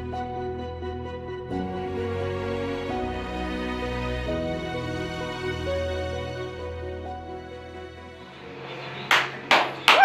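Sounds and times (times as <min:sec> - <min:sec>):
background music: 0:00.0 - 0:10.0
hand claps: 0:09.1 - 0:10.0.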